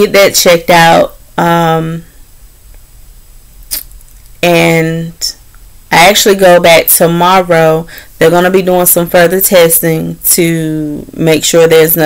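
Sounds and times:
faint low room hum: 0.0s - 12.0s.

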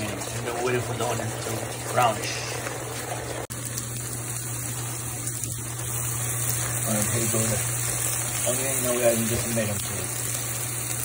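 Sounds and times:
onion sizzling in a pan: 0.0s - 11.0s.

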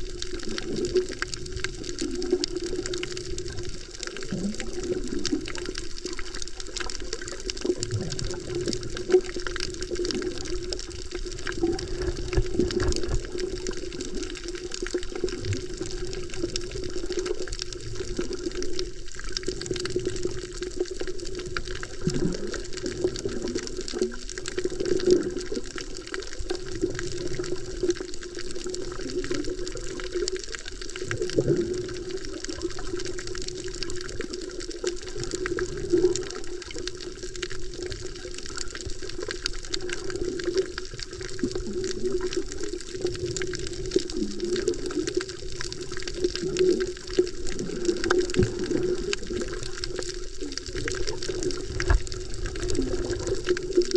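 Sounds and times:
fine continuous crackle: 0.0s - 53.9s
muffled underwater water wash: 0.0s - 53.9s.

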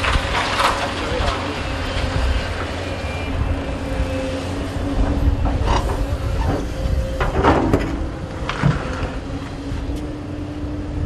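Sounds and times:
excavator engine rumble: 0.0s - 11.0s.

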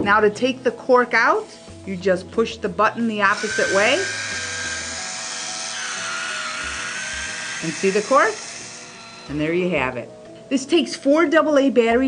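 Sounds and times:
background music: 0.0s - 12.0s
small motor whirring: 3.2s - 9.7s.

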